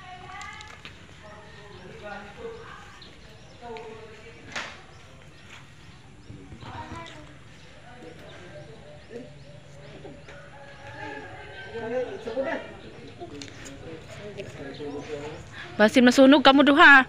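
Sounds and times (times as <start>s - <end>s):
people talking quietly: 0.0s - 17.0s.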